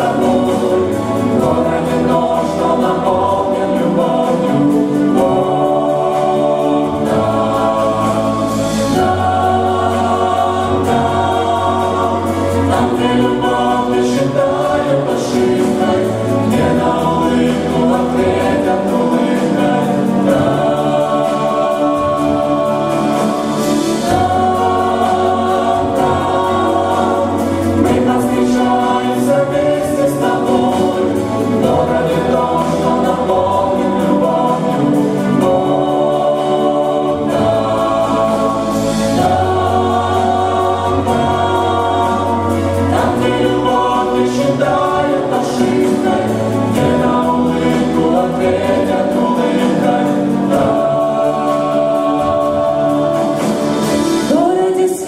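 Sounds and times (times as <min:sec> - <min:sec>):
mixed choir singing in harmony: 0:00.0 - 0:55.0.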